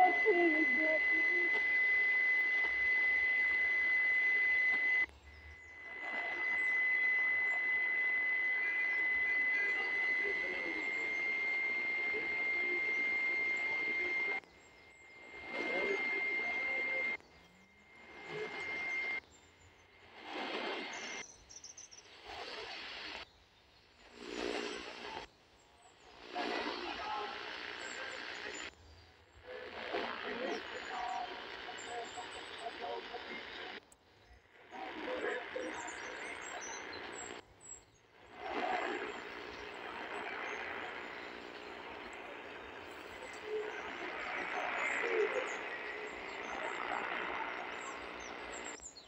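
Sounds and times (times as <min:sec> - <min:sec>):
steady high whistle: 0:00.0 - 0:19.2
radio static hiss: 0:00.0 - 0:49.0.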